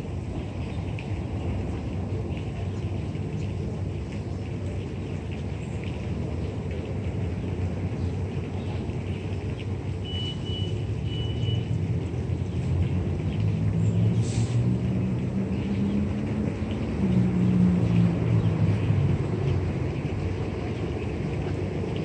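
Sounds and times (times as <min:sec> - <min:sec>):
large vehicle engine droning: 0:10.0 - 0:22.0
brief hiss: 0:14.2 - 0:14.6.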